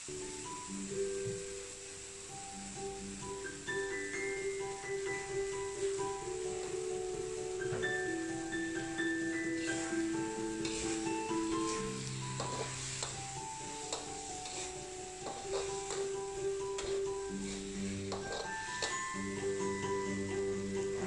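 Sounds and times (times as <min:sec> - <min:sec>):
background music: 0:00.0 - 0:21.0
food sizzling: 0:00.0 - 0:21.0
metal spatula scraping wok: 0:09.4 - 0:20.5.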